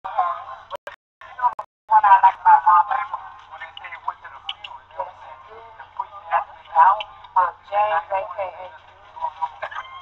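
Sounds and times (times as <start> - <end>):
people conversing: 0.1 - 10.0.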